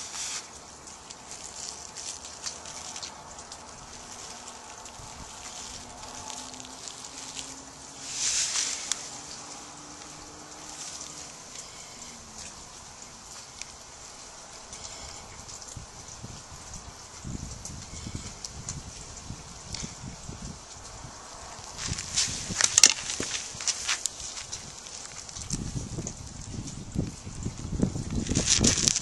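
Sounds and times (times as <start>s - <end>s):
tinder rustling and crackling: 0.0s - 29.0s.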